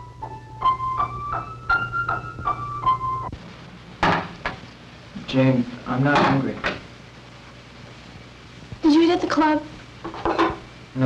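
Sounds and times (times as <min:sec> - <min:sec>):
sharp knock: 0:04.0 - 0:04.6.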